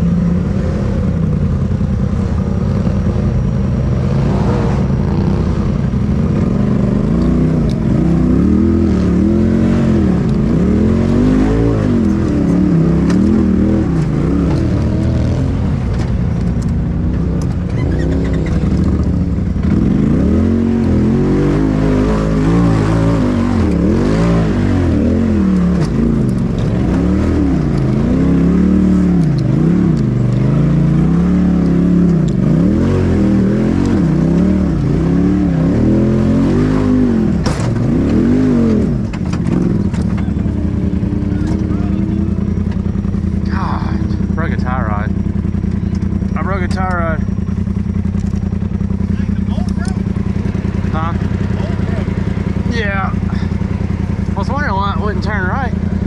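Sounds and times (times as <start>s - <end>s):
engine revving in bursts: 4.0s - 15.9s, 17.8s - 56.0s.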